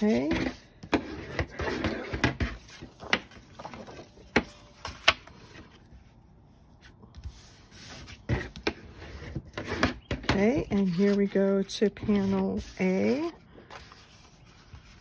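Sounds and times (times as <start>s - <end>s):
paper rubbing on tabletop: 10.7s - 15.0s.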